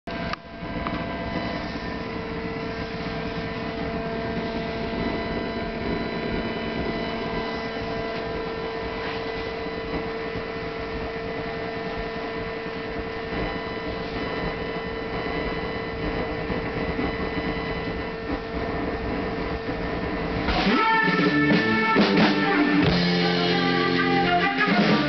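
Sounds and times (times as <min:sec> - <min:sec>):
steady tonal hum: 0:00.1 - 0:25.0.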